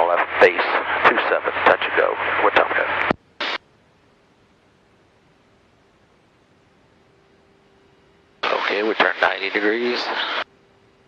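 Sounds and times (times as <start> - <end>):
faint low hum: 0.0 - 11.0
faint steady hiss: 0.0 - 11.0.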